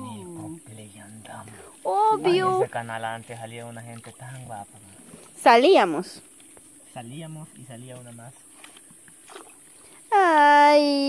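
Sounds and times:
quiet low talking: 0.0 - 5.0.

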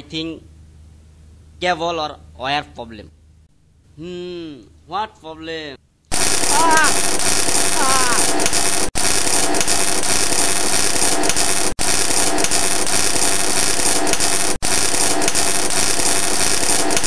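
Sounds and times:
electric shock crackling buzz: 6.1 - 17.0.

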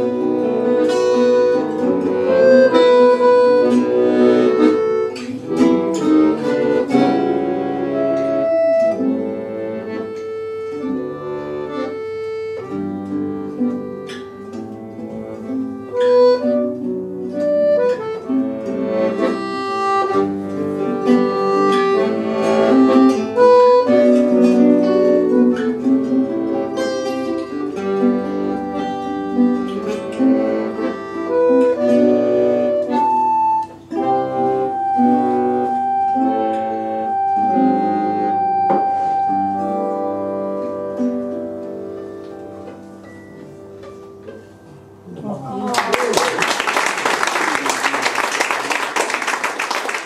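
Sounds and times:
piano accordion: 0.0 - 45.0
acoustic guitar: 0.0 - 45.7.

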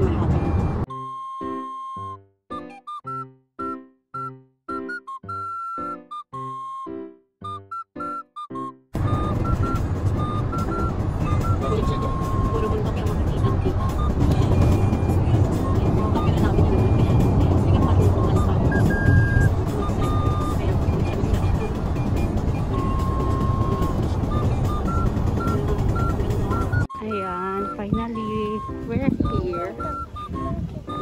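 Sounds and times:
car road and engine rumble: 0.0 - 0.9, 9.0 - 31.0
faint melody of short notes: 0.0 - 31.0.

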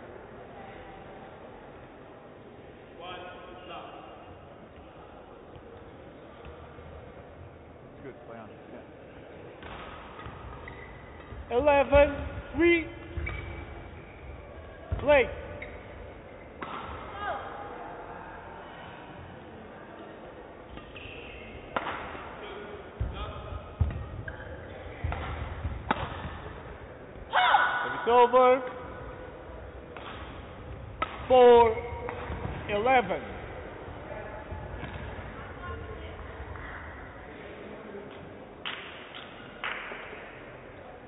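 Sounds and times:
rackets hitting shuttlecock: 9.6 - 14.2, 14.9 - 17.1, 20.7 - 22.4, 23.0 - 26.7, 29.8 - 32.8, 34.7 - 35.3.

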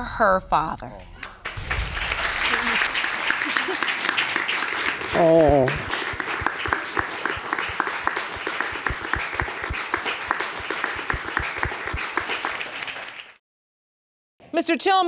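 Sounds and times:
audience applauding: 1.2 - 13.4.

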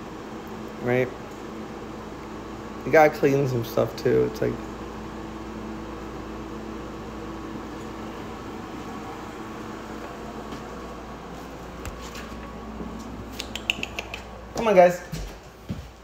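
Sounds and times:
air conditioner hum: 0.0 - 16.0.

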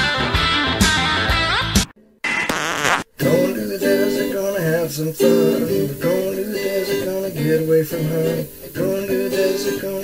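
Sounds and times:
recorded song: 0.1 - 10.0
song with strummed guitar: 3.2 - 10.0.

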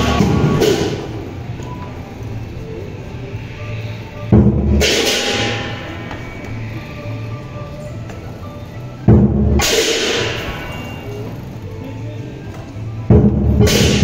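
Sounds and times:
cymbals clashing: 0.0 - 1.2, 4.3 - 6.5, 9.1 - 11.2, 13.2 - 14.0
big drum beating: 4.3 - 5.8, 9.1 - 10.4, 13.0 - 14.0.

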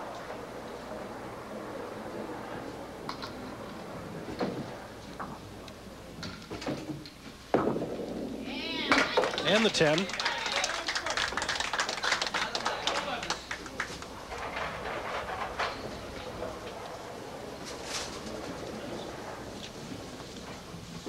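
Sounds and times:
bowling pins clattering: 3.0 - 10.4, 13.6 - 21.0.

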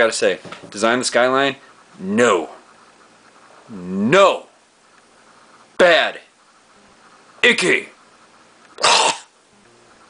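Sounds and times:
man making harsh throat noise: 8.8 - 9.4.

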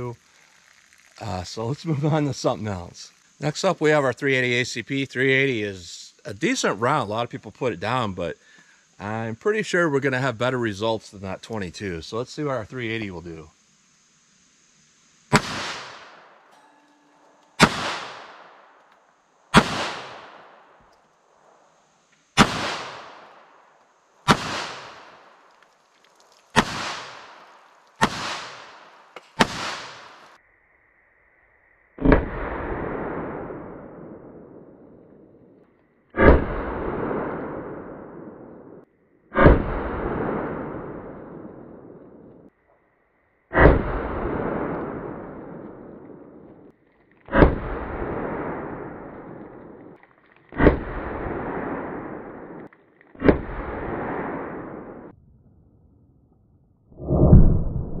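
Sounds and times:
pistol shots: 15.3 - 16.3, 17.6 - 18.7, 19.5 - 20.6, 22.4 - 23.3, 24.2 - 25.2, 26.6 - 27.4, 28.0 - 30.3.

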